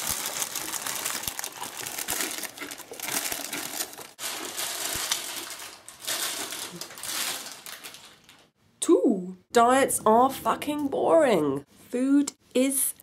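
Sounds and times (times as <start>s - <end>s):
crunching: 0.0s - 8.5s
plastic snack packet crinkling: 0.0s - 8.5s.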